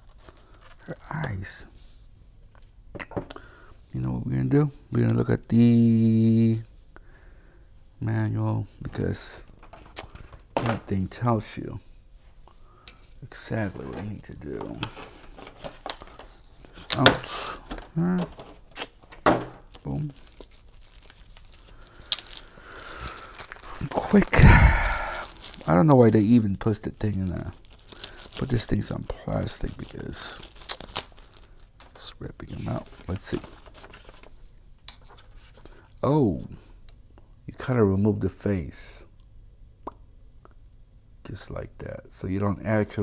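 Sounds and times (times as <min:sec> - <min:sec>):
plastic packaging rustling: 0:00.0 - 0:01.0, 0:13.6 - 0:34.4.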